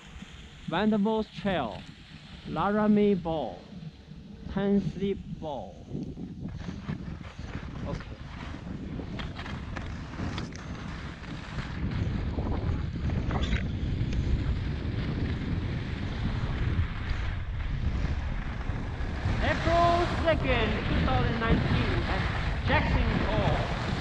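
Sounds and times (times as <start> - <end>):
skis scraping on snow: 0.0 - 3.2, 6.5 - 24.0
wind buffeting microphone: 0.0 - 24.0.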